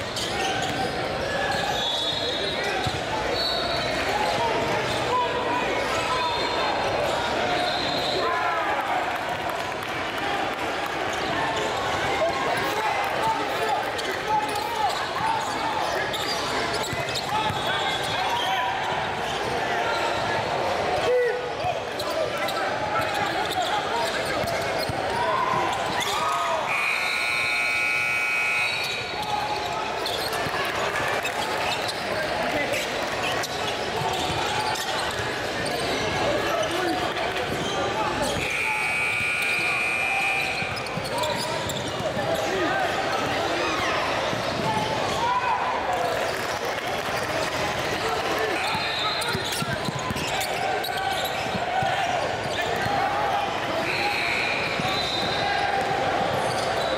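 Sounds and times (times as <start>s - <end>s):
chatter echoing in a hall: 0.0s - 56.9s.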